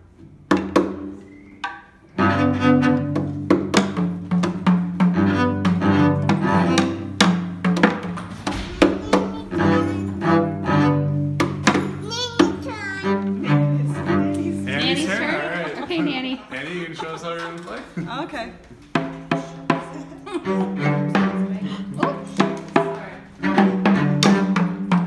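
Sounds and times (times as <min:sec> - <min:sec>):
hand drums tapped with beaters: 0:00.4 - 0:01.9, 0:02.9 - 0:12.7, 0:18.6 - 0:25.0
child's high voice: 0:08.8 - 0:10.2, 0:11.9 - 0:13.3.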